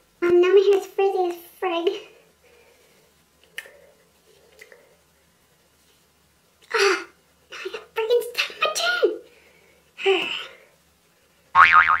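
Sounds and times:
cartoon boing with wobbling pitch: 11.6 - 12.0.

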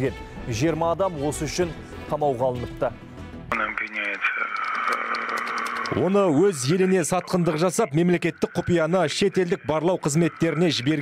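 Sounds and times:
man speaking: 3.5 - 5.3, 5.9 - 11.0.

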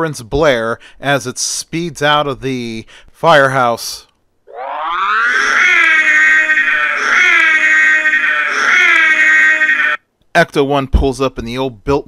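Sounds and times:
voice imitating a siren: 4.5 - 10.0.

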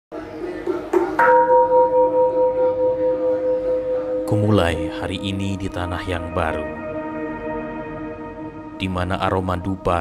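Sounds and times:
metal bell ringing: 1.1 - 5.8.

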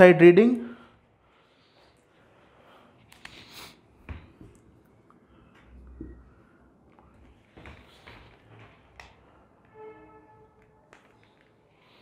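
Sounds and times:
pitched squeak: 9.6 - 11.2.

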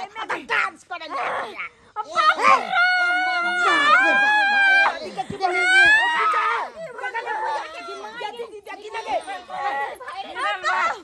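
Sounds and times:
people crying out and lamenting: 0.2 - 11.0.

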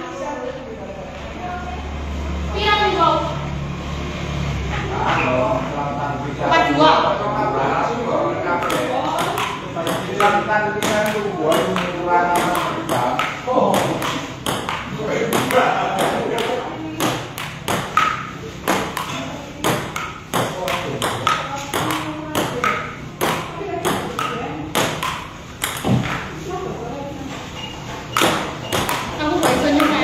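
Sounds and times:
table tennis ball clicking: 8.6 - 26.3, 28.1 - 30.0.

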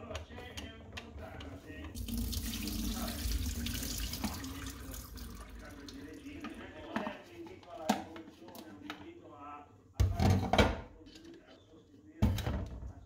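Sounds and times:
tap water running into sink: 1.8 - 6.6.

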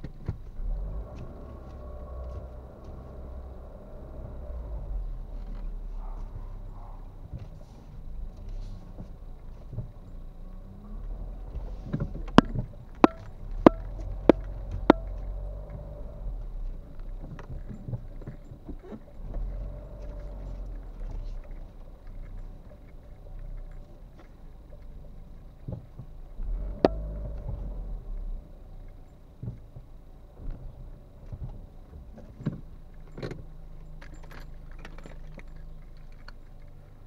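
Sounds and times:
car engine humming: 0.0 - 37.0
vehicle rumbling: 0.0 - 37.0
faint clicks and knocks: 11.0 - 37.0
short knocks: 12.0 - 15.4.

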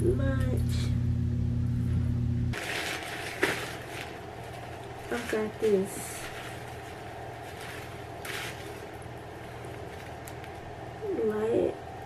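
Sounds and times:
low background hum: 0.0 - 12.0
fabric rustling: 2.6 - 10.7.

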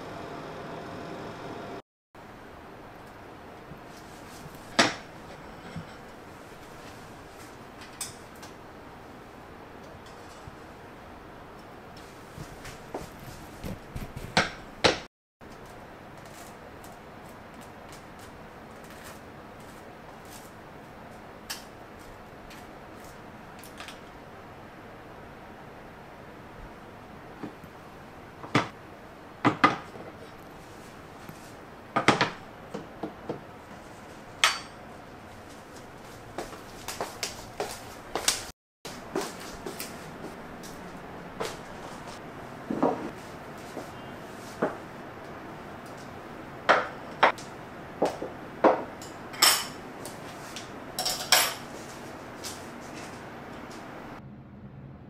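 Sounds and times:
plates and glasses on wooden tray: 4.7 - 6.3, 48.6 - 49.8
plates clinking on counter: 4.8 - 6.1, 34.4 - 34.8, 51.0 - 51.7.

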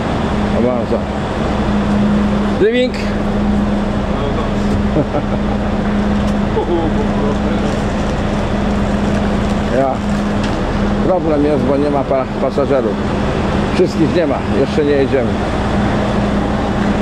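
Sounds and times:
bus engine idling: 0.0 - 17.0
constant drone: 0.0 - 17.0.

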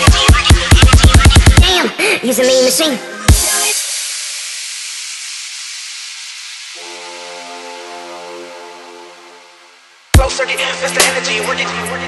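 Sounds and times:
hissing noise wash: 3.3 - 10.2
sustained synth chord: 6.8 - 10.1.

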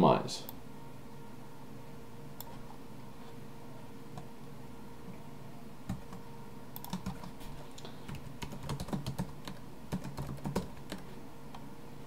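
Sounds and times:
typing on a computer keyboard: 6.8 - 11.1.

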